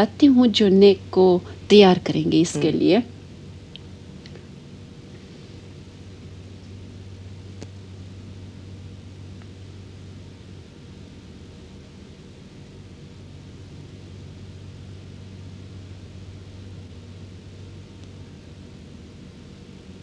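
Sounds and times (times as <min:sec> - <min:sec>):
even hiss: 0:00.0 - 0:03.1
steady low hum: 0:00.0 - 0:20.0.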